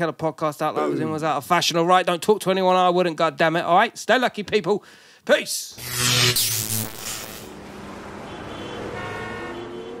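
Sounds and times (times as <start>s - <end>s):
sustained electronic tones: 5.8s - 7.6s.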